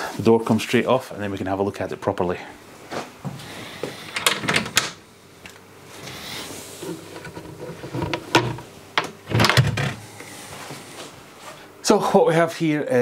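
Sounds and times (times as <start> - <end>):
cabinet door clicks and knocks: 8.4 - 10.0.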